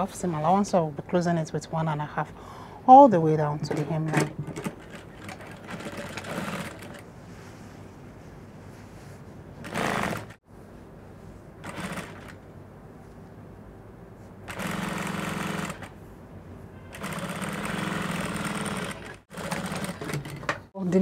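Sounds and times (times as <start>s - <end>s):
faint steady machine hum: 0.0s - 21.0s
sewing machine stitching: 4.2s - 7.0s, 9.6s - 10.4s, 11.6s - 12.4s, 14.5s - 15.9s, 17.0s - 20.6s.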